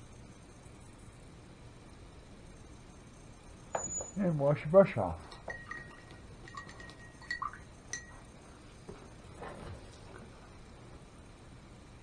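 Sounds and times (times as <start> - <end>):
paintbrush clinking against glass jar: 5.2 - 8.3.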